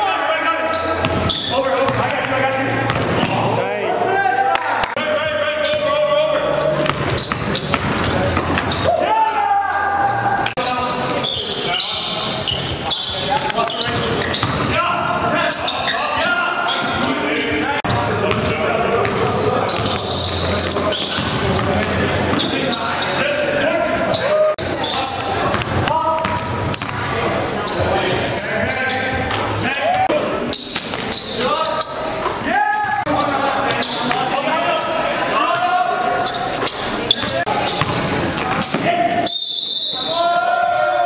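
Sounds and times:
players' voices in echoing gym: 0.0 - 41.0
basketball bouncing on gym floor: 1.0 - 2.1, 2.9 - 3.4, 6.8 - 8.8, 13.4 - 14.8, 18.3 - 22.5, 24.9 - 27.1, 37.2 - 38.9.

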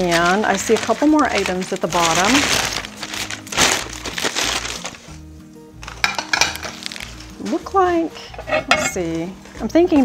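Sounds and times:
paper wrapping crinkling: 0.0 - 7.5
soft background music: 0.0 - 10.0.

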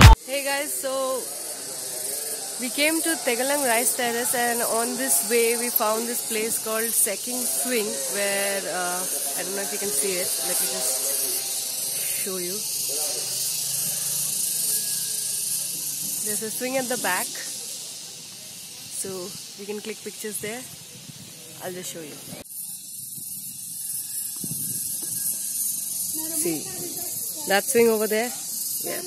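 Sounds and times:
woman talking: 0.0 - 1.2, 2.6 - 10.9, 12.0 - 12.6, 16.2 - 17.5, 19.0 - 20.7, 21.6 - 22.3, 27.5 - 29.0
steady high hiss: 0.0 - 29.0.

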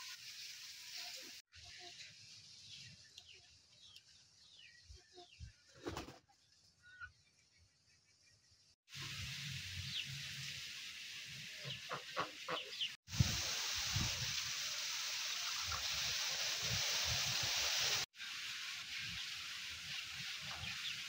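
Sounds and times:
small birds chirping: 1.0 - 8.8.

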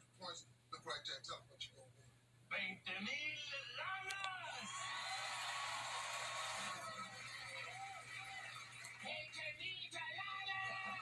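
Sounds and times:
audience applauding and cheering: 4.5 - 9.3.

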